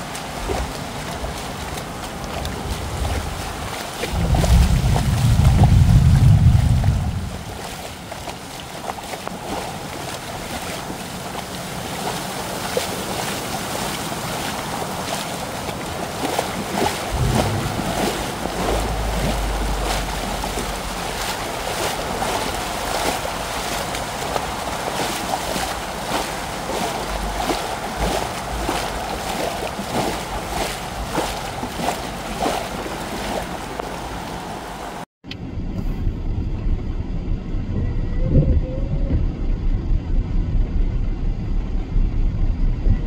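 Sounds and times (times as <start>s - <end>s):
wind buffeting microphone: 0.0s - 8.3s, 9.0s - 43.0s
heavy rain on flooded street: 0.0s - 35.1s
water splashes: 0.0s - 35.1s.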